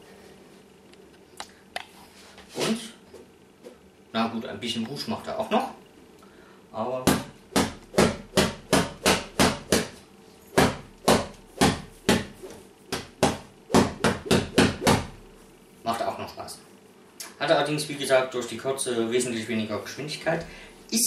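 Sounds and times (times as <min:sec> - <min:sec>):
cane whacking a cushion: 0:10.6 - 0:15.2.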